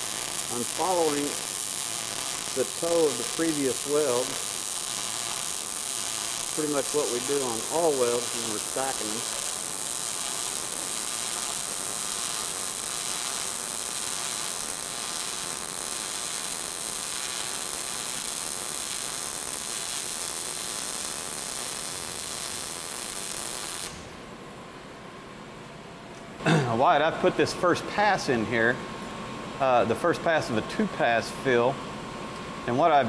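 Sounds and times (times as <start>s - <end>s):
welding arc buzzing: 0.0s - 24.2s.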